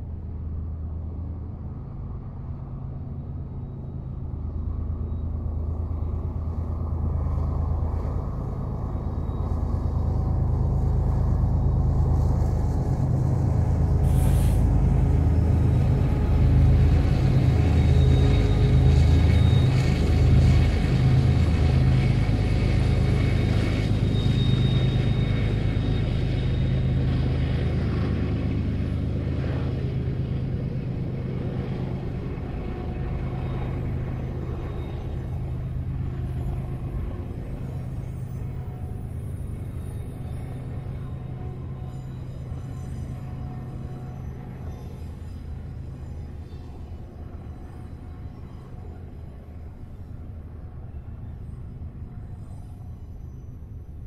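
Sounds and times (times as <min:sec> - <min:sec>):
freight train rumbling past: 0:00.0 - 0:54.0
brief hiss: 0:14.1 - 0:14.7.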